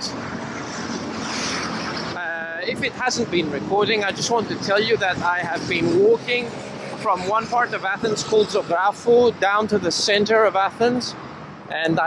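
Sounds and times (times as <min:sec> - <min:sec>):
passing cars: 0:00.0 - 0:12.0.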